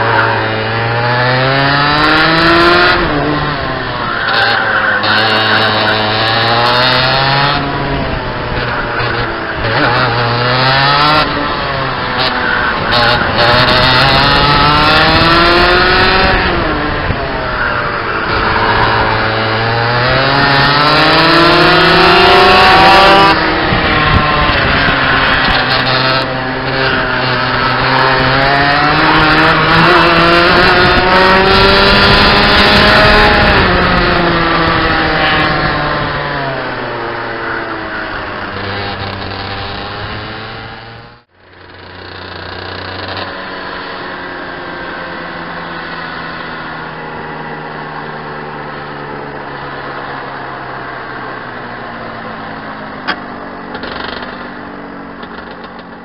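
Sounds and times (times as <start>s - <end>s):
kart engine revving: 0.0s - 56.0s.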